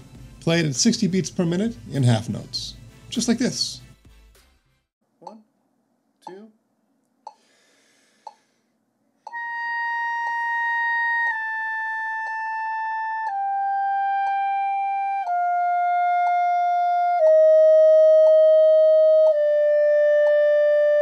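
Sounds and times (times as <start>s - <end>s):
metronome ticking: 5.2s - 5.4s, 6.2s - 6.6s, 7.3s - 7.5s, 8.2s - 8.5s, 9.3s - 18.4s
clarinet playing a slow scale: 9.3s - 21.0s.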